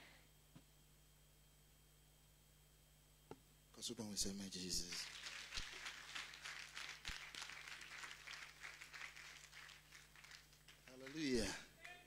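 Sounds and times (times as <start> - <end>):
people clapping: 4.8 - 12.0.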